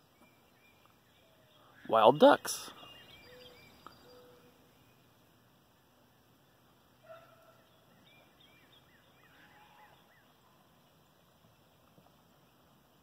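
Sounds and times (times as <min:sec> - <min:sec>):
faint bird calls: 0:00.0 - 0:05.3, 0:05.9 - 0:12.9
bird chirps: 0:00.0 - 0:13.0.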